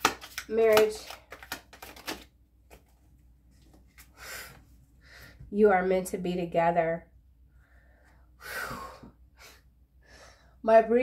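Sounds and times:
playing cards being shuffled: 0.0 - 4.1.

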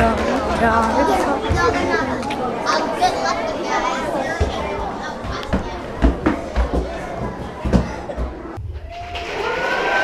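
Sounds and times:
children's voices: 0.0 - 8.6.

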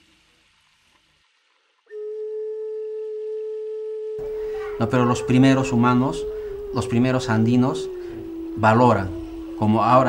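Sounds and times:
steady pure tone: 1.9 - 10.0.

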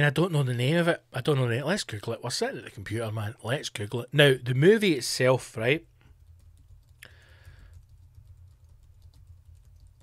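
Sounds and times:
steady low hum: 5.7 - 10.0
keyboard typing: 6.1 - 10.0.

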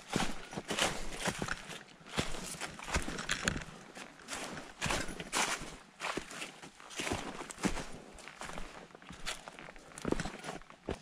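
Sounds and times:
footsteps through dry leaves: 0.0 - 10.6.

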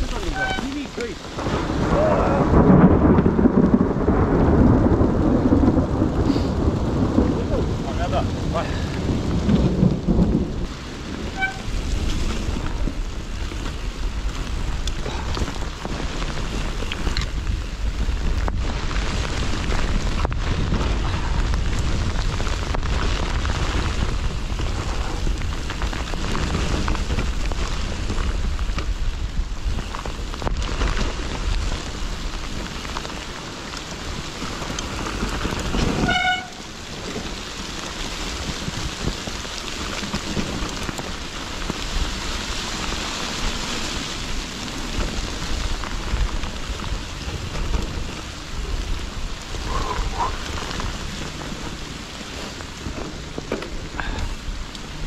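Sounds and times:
bike tyre noise: 0.0 - 55.0
wind rumble on microphone: 0.0 - 55.0
bike knocking on bumps: 11.4 - 55.0.

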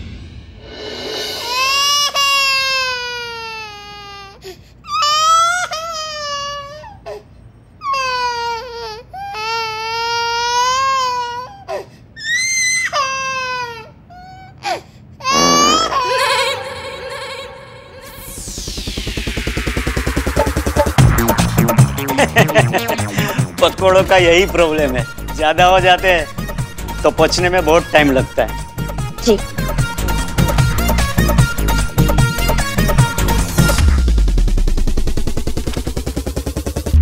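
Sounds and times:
high-pitched comic sobbing cries: 7.9 - 17.6.

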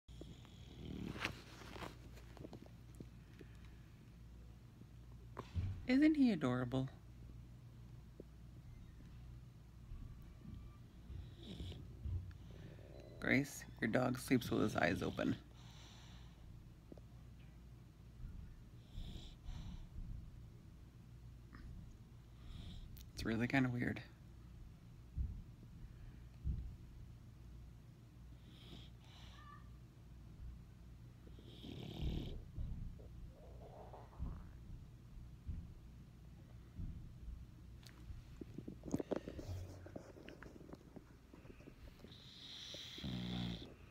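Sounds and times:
dog snoring: 0.1 - 1.6, 11.1 - 16.4, 18.8 - 19.8, 22.3 - 22.9, 28.4 - 29.6, 31.2 - 34.8, 41.4 - 43.9
puppy breathing quietly: 11.1 - 16.8, 18.3 - 20.3, 37.8 - 43.9.

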